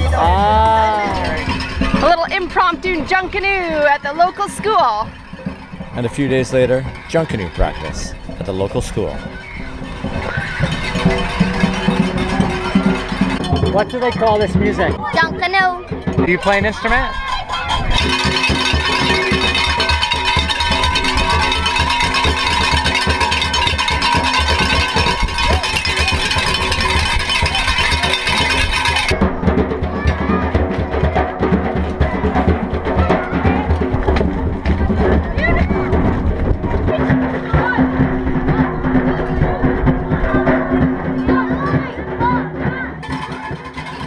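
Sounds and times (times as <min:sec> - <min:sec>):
rhythmic band drumming: 0:00.0 - 0:44.0
children's voices: 0:09.3 - 0:13.7, 0:14.8 - 0:19.7, 0:20.5 - 0:23.5, 0:24.5 - 0:43.8.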